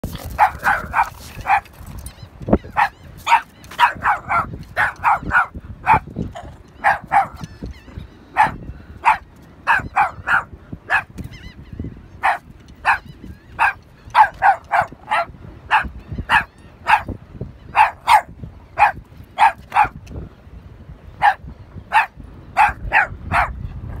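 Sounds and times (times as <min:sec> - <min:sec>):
dog barking: 0:00.4 - 0:01.6, 0:02.8 - 0:06.0, 0:06.8 - 0:07.4, 0:08.4 - 0:11.1, 0:12.2 - 0:13.0, 0:13.6 - 0:17.1, 0:17.8 - 0:19.9, 0:21.2 - 0:23.6.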